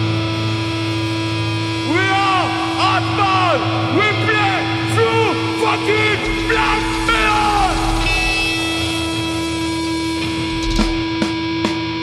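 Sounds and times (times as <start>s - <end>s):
distorted electric guitars droning: 0.0s - 12.0s.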